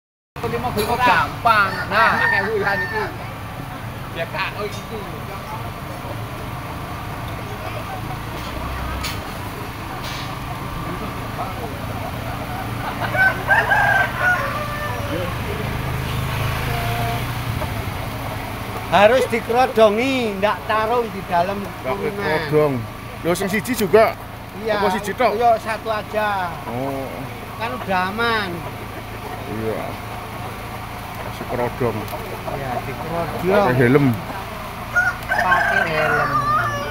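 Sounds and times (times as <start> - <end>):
market background noise: 0.4 - 36.9
roosters crowing: 0.4 - 36.9.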